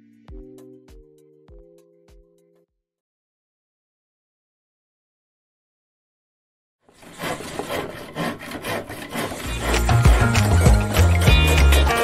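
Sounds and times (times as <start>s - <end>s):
pencil sketching strokes: 7.0s - 11.7s
music with deep bass: 9.8s - 12.0s.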